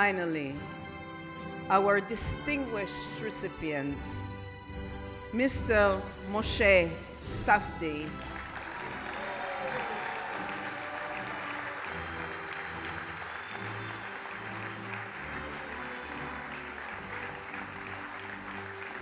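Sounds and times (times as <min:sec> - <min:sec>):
slow processional music: 0:00.0 - 0:19.0
audience applauding: 0:08.2 - 0:19.0.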